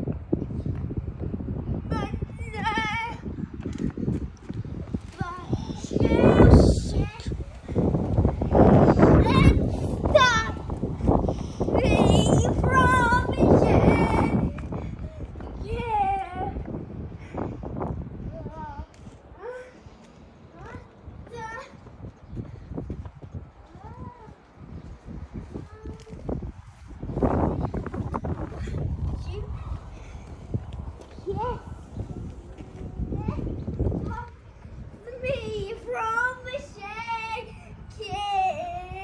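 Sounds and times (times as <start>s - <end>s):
low rumbling noise: 0.0s - 39.0s
child singing: 5.2s - 7.4s, 11.8s - 14.6s, 35.1s - 39.0s.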